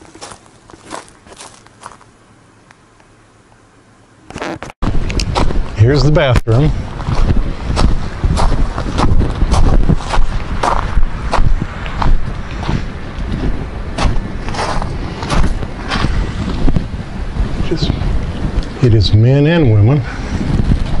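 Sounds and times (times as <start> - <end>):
footsteps crunching on gravel: 0.0 - 2.2, 4.4 - 16.9
wind buffeting microphone: 4.8 - 21.0.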